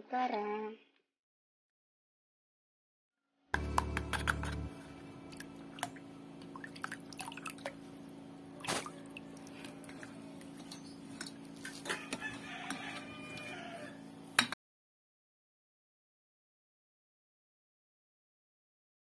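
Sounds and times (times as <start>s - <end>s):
liquid sloshing: 5.3s - 12.2s.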